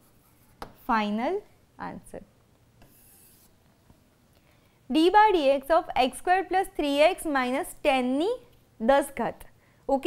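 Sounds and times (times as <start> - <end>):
stylus scratching on screen: 2.8 - 3.6.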